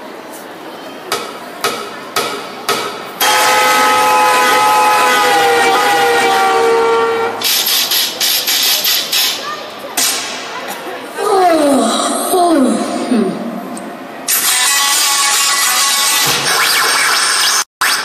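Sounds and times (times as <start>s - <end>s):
rough noisy sound: 0.0s - 18.0s.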